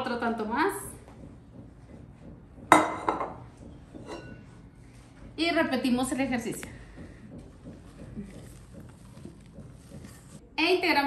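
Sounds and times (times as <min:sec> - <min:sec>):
kitchenware clinking: 0:02.7 - 0:03.4, 0:04.0 - 0:04.6.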